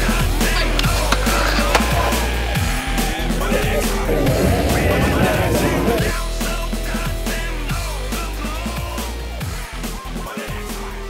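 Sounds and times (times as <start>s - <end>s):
loud electronic music: 0.0s - 6.6s.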